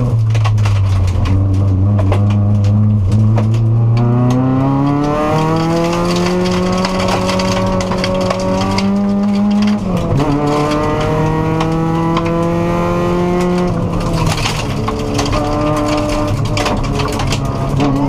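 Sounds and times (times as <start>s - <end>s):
gravel ticking on car underside: 0.0s - 4.1s, 4.8s - 12.4s, 13.4s - 18.0s
car engine accelerating: 0.0s - 18.0s.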